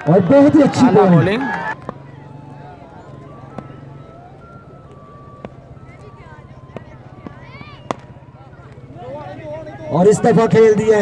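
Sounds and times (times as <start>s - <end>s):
people shouting and calling: 0.0s - 11.0s.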